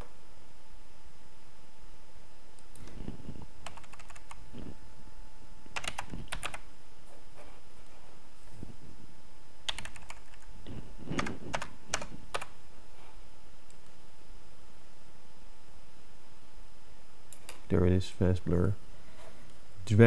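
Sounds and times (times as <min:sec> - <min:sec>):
typing on computer keyboard: 0:03.6 - 0:04.4, 0:05.8 - 0:06.6, 0:09.7 - 0:10.5, 0:11.2 - 0:12.5.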